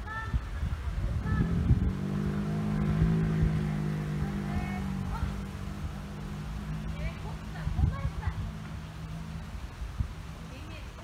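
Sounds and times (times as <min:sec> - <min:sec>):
motor engine hum: 0:01.0 - 0:10.6.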